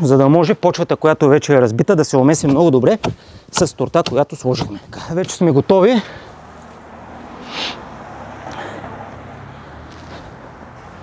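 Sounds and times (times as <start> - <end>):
distant traffic hum: 0.0 - 11.0
brief rustle: 9.9 - 10.4.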